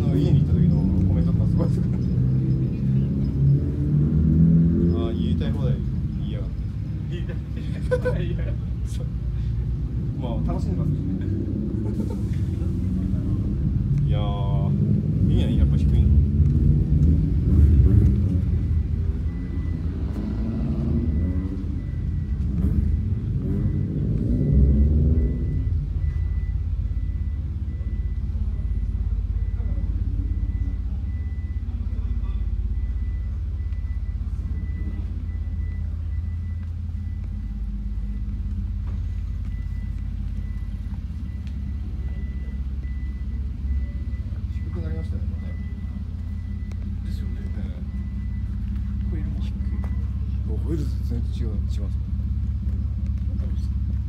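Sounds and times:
people talking: 0.0s - 2.8s, 4.8s - 9.2s, 10.1s - 16.2s, 28.4s - 32.7s, 43.8s - 46.2s, 46.8s - 47.9s, 48.9s - 52.1s, 53.1s - 53.8s
steady low rumble: 0.0s - 54.0s.

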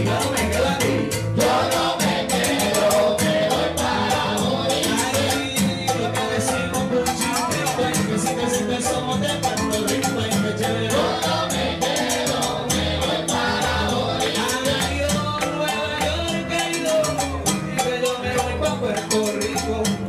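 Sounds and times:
hand percussion: 0.0s - 20.0s
keyboard: 0.0s - 20.0s.

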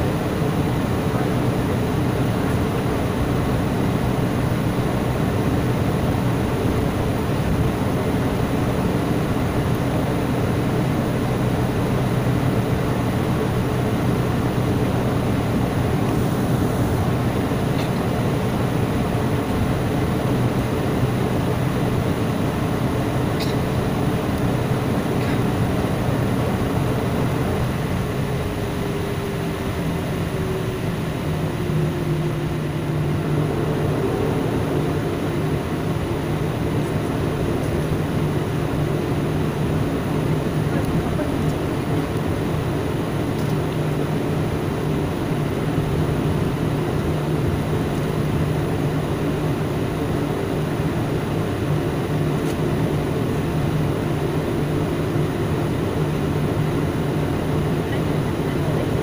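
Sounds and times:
jet engines rumbling in cabin: 0.0s - 59.0s.

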